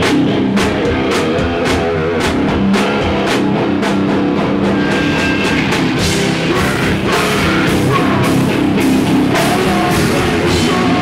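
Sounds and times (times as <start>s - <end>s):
drum kit and cymbals: 0.0s - 11.0s
electric guitars: 0.0s - 11.0s.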